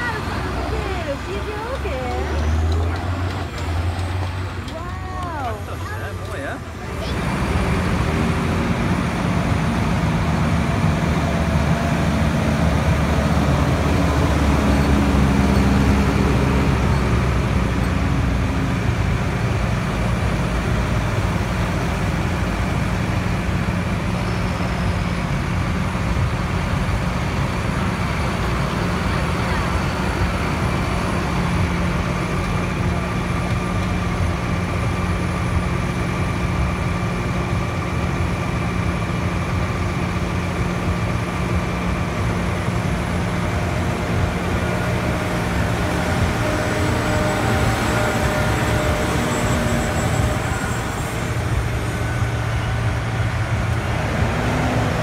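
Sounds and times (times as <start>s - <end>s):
tractor diesel engines driving past: 0.0s - 55.0s.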